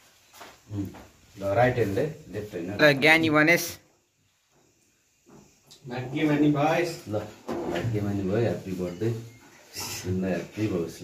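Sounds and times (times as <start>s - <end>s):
man talking: 0.7s - 3.8s, 5.8s - 11.0s.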